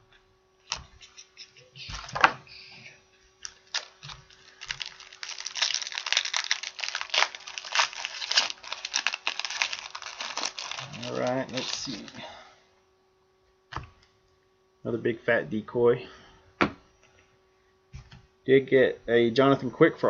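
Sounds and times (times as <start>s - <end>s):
card pack wrappers crinkling: 3.4s - 12.3s.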